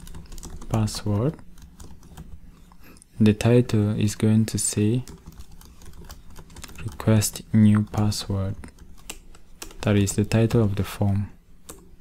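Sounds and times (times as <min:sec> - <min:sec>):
typing on a computer keyboard: 0:00.0 - 0:02.4, 0:05.0 - 0:10.0.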